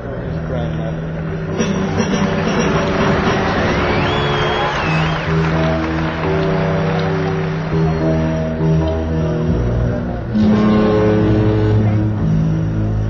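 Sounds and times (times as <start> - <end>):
rock band playing loud: 1.5 - 8.8.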